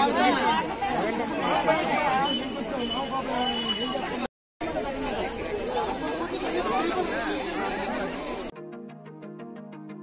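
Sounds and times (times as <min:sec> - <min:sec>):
people talking at once: 0:00.0 - 0:08.5.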